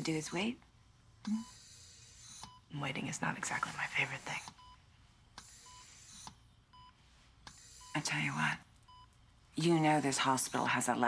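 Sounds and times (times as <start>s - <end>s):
patient monitor beeping: 1.2s - 11.0s.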